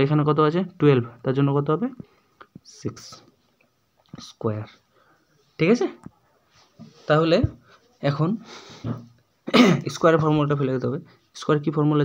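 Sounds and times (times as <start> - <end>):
man speaking: 0.0 - 3.4, 4.1 - 8.5, 9.6 - 12.0.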